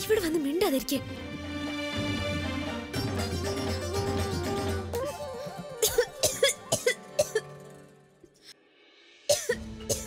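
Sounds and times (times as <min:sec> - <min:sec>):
background music: 0:00.0 - 0:10.0
woman coughing hard: 0:05.8 - 0:07.5, 0:09.3 - 0:10.0.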